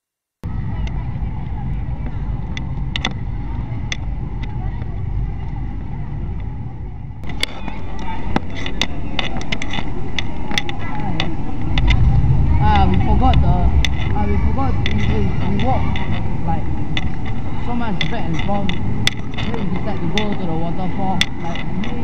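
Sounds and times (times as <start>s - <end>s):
indistinct voices: 0.4s - 22.0s
camera handling and walking noise: 7.2s - 12.2s, 18.0s - 20.5s
sharp clicks: 7.2s - 20.5s.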